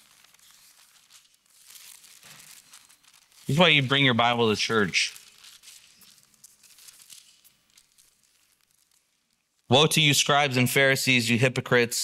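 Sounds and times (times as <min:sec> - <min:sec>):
thin pages rustling: 0:00.0 - 0:09.7.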